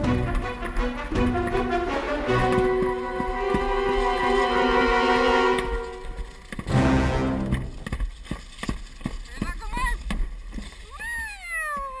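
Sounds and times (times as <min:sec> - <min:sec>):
sled clattering on track: 0:00.0 - 0:12.0
person crying out: 0:10.9 - 0:12.0.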